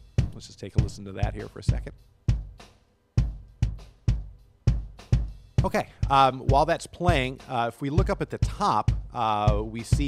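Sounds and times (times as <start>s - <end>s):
kick drum hits: 2.3s - 2.6s, 3.2s - 7.3s.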